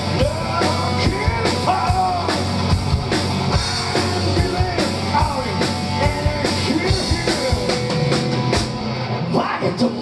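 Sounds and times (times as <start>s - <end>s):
drum kit beat: 0.0s - 9.0s
bass guitar: 0.0s - 10.0s
electric guitar: 0.0s - 10.0s.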